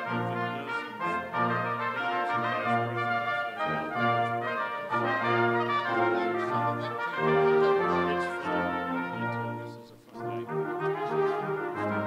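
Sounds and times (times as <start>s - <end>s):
brass ensemble playing: 0.0s - 12.0s.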